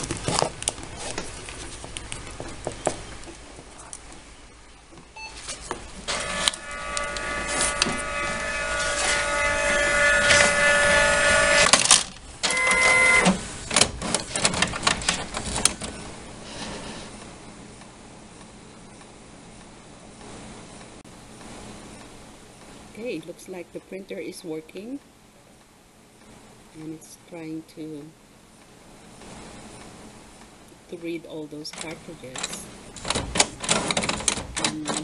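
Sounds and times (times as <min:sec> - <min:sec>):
faint printer hum: 0:00.0 - 0:35.0
printer whirring: 0:05.4 - 0:16.4
printer motor whining: 0:05.9 - 0:16.0
printer clicks: 0:31.8 - 0:35.0.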